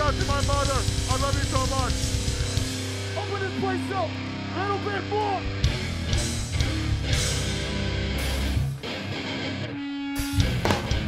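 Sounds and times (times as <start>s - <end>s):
live band playing heavy riff: 0.0s - 11.0s.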